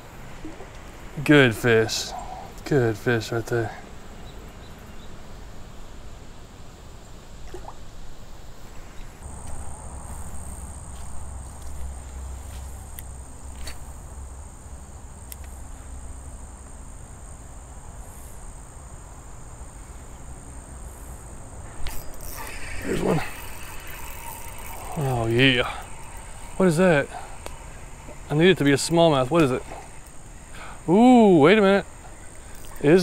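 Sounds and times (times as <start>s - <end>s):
insects singing high drone: 9.0s - 33.0s
faint clicks: 15.2s - 15.6s, 21.8s - 30.8s.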